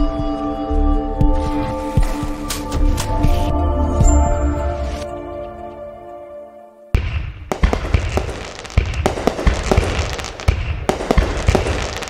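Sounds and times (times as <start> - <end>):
fireworks bangs and pops: 7.0 - 12.0
fireworks crackling: 7.5 - 12.0.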